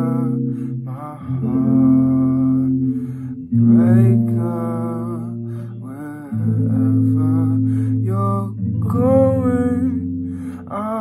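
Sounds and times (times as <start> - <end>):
electric guitar chords ringing: 0.0 - 11.0
man singing wordless notes: 0.0 - 11.0.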